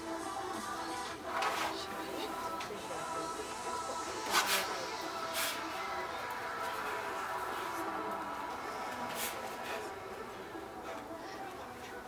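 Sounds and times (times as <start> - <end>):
background music: 0.0 - 12.0
room murmur: 0.0 - 12.0.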